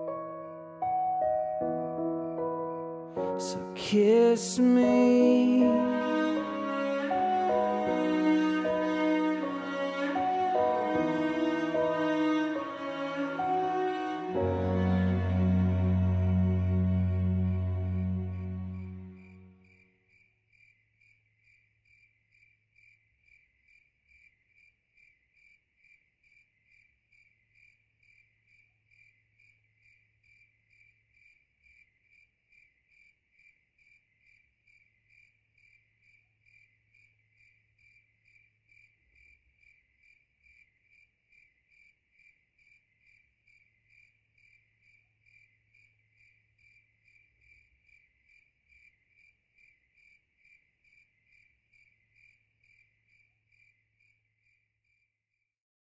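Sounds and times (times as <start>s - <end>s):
crickets chirping: 3.2s - 14.0s, 16.3s - 55.1s.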